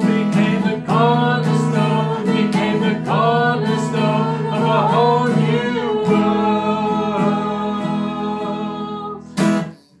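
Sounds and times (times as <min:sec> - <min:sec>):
people singing together: 0:00.0 - 0:09.6
acoustic guitar: 0:00.0 - 0:10.0.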